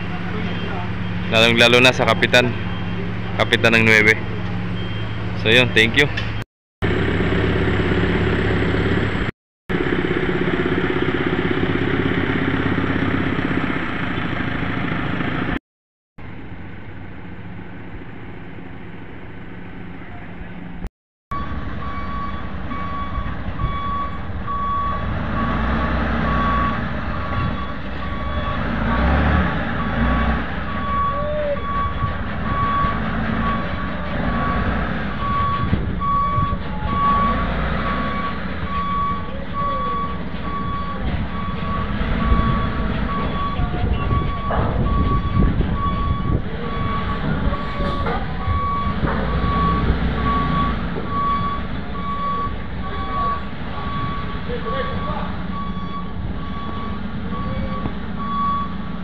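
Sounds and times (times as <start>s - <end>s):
truck reversing alarm beeping: 0.0s - 8.9s, 21.3s - 59.0s
diesel engine running: 0.0s - 15.6s, 16.2s - 59.0s.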